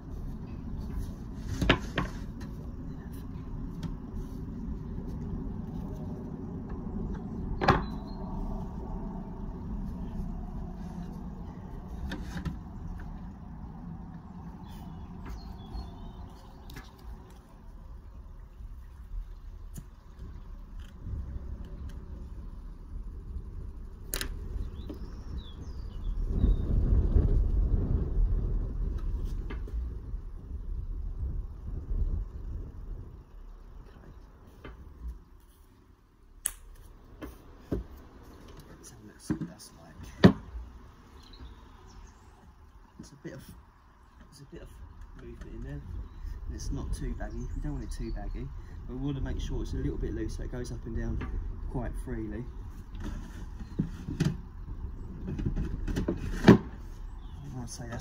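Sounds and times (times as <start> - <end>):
low rumble: 0.0 - 35.3, 44.6 - 55.9.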